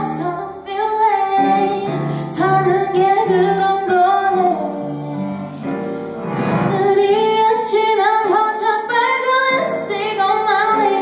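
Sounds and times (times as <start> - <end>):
young woman singing: 0.0 - 5.9, 6.5 - 11.0.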